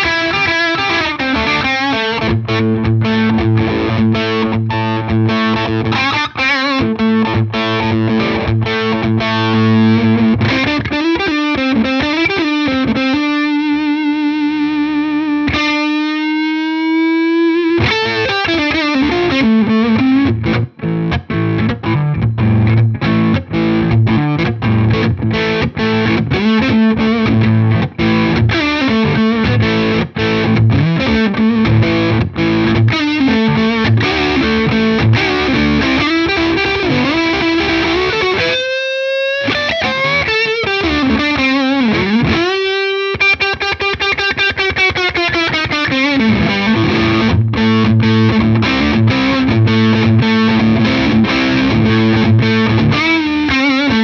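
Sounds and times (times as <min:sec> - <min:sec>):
overdriven electric guitar: 0:00.0 - 0:54.0.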